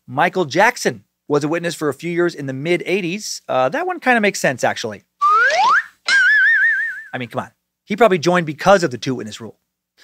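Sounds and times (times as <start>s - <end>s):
comedy slide whistle: 5.2s - 7.2s.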